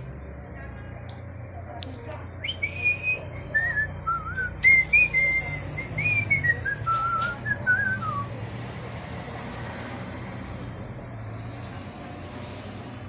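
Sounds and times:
person whistling a tune: 2.5s - 8.3s.

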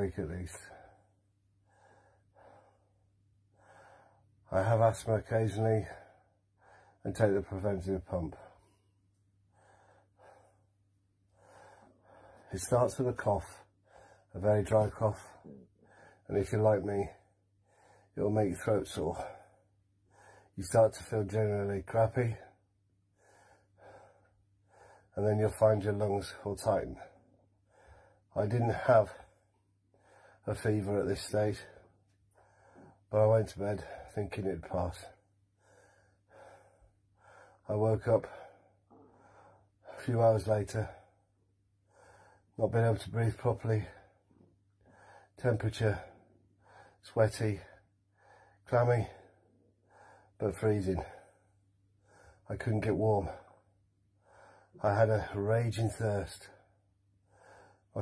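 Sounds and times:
man breathing faintly: 0.0s - 58.0s.

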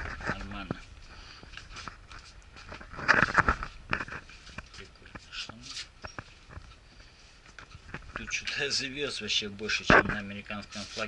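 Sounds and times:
camera handling rustles and ticks: 0.0s - 8.6s, 9.6s - 11.0s.

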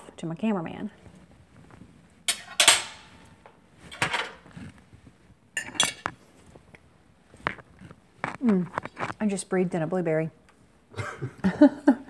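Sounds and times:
fork clinking on ceramic plate: 5.6s - 6.1s.

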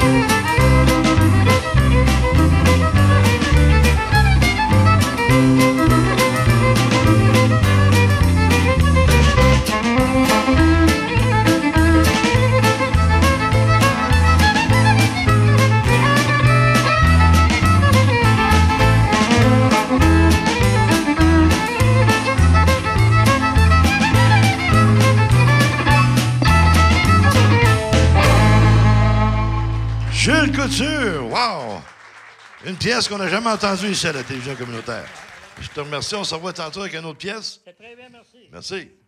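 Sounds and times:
electric guitar: 0.0s - 31.2s
drum kit beat: 0.0s - 31.3s
bass guitar: 0.0s - 31.4s
fiddle playing folk tune: 0.0s - 31.4s
keyboard: 0.0s - 31.9s.

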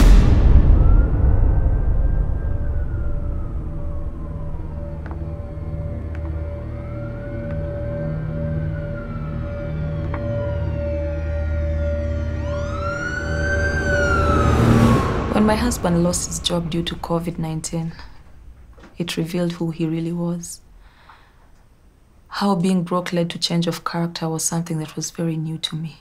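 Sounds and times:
siren wailing: 0.0s - 19.0s
low steady drone: 0.0s - 21.0s.

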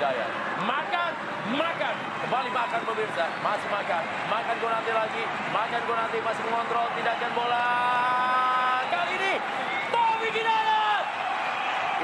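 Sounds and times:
man commentating excitedly: 0.0s - 11.1s
stadium background noise: 0.0s - 12.0s.

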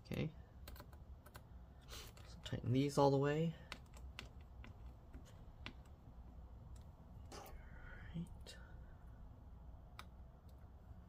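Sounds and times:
soft breathy sound: 7.3s - 9.4s.

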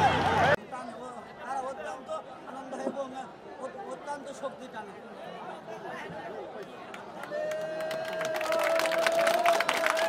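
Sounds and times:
crowd of men chattering: 0.0s - 10.0s.

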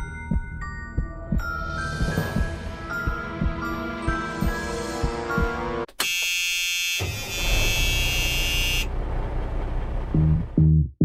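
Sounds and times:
electronic buzzing tone: 6.0s - 8.9s.

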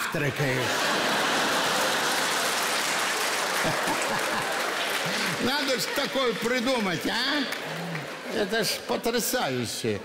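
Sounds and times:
audience applauding: 0.5s - 9.3s.

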